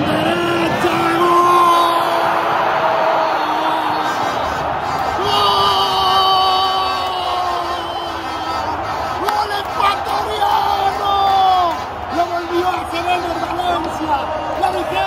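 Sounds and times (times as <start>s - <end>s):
commentator shouting goal cry: 0.0s - 15.0s
fans cheering and shouting: 0.0s - 15.0s.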